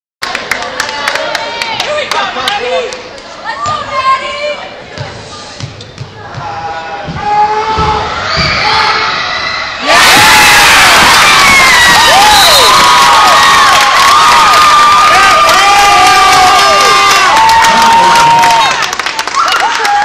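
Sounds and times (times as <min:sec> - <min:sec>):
low thuds: 0:04.9 - 0:08.7
crowd shouting: 0:06.2 - 0:18.7
crowd cheering and screaming: 0:07.7 - 0:20.0.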